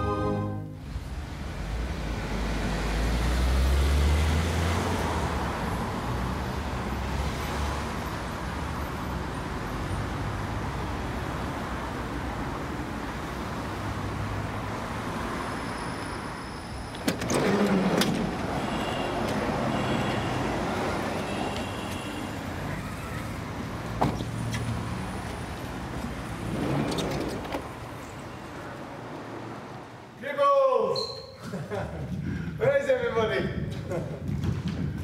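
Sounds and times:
minibus pulling up: 0:00.0 - 0:30.2
road traffic passing: 0:00.0 - 0:30.2.

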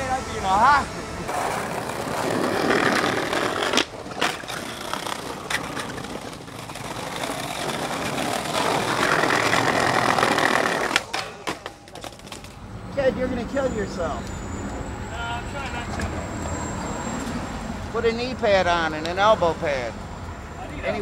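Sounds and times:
skateboard clacks: 0:01.3 - 0:12.6
skateboard clattering on ground: 0:01.3 - 0:12.6
skateboard wheels rolling on brick: 0:01.3 - 0:12.6.

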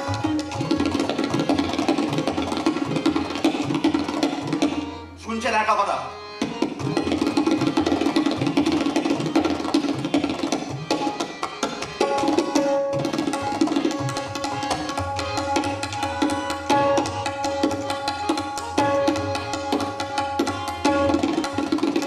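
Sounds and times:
rapid tabla strokes: 0:00.0 - 0:04.9, 0:06.4 - 0:22.0.

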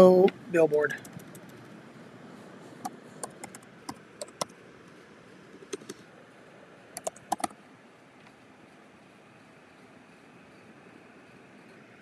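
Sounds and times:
keyboard key clicks: 0:02.8 - 0:04.5, 0:07.0 - 0:07.5.

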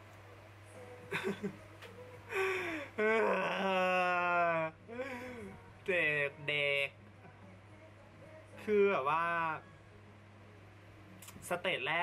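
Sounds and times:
man moaning: 0:02.3 - 0:05.6.

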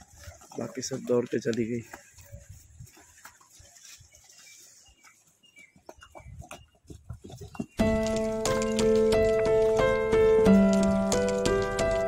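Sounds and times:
hooves thudding on sand and concrete: 0:00.0 - 0:12.0
background music: 0:07.8 - 0:12.0.

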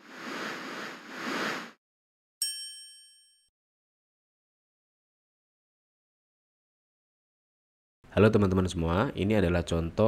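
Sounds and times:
bright chime ding: 0:02.4 - 0:03.5.

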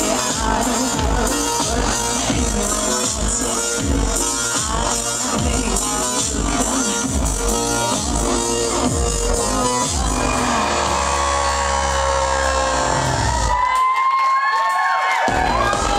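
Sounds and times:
industrial electronic band music: 0:00.0 - 0:13.6
held synth drone: 0:06.4 - 0:13.5
crowd cheering and whistling: 0:09.2 - 0:15.9.

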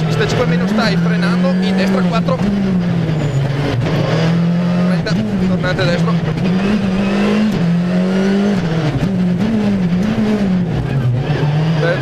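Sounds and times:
rally car engine from cabin: 0:00.0 - 0:12.0.

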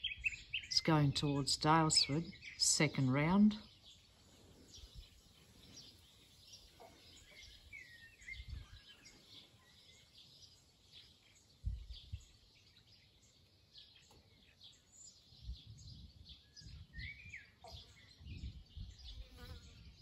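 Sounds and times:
small birds chirping: 0:00.0 - 0:20.0
wind buffeting microphone: 0:04.7 - 0:05.9, 0:07.2 - 0:09.0, 0:11.6 - 0:12.4, 0:15.2 - 0:20.0.

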